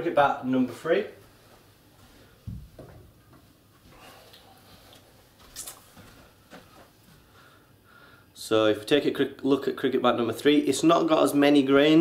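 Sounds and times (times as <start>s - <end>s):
faint footsteps: 0.7s - 7.5s.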